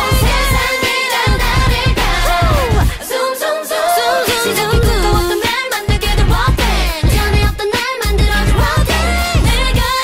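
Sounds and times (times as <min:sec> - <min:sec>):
dance-pop music with woman singing: 0:00.0 - 0:10.0.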